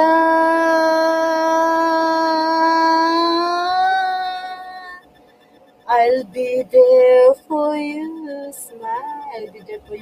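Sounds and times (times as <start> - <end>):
woman singing long note: 0.0 - 5.0, 5.9 - 10.0.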